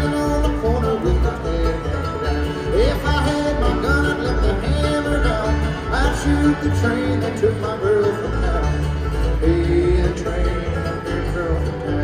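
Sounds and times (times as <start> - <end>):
bluegrass band playing: 0.0 - 12.0
pulsing bass line: 0.0 - 12.0.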